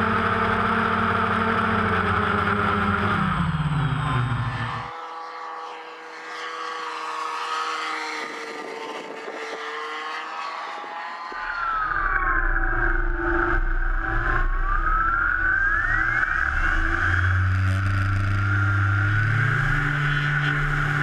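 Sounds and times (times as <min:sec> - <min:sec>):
model plane engine and propeller: 0:00.0 - 0:14.1.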